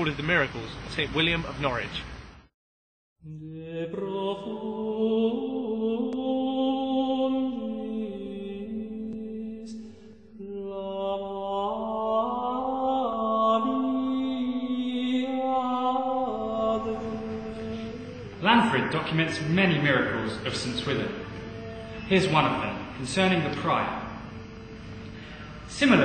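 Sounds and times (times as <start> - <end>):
slow chanted singing: 3.2 - 26.0.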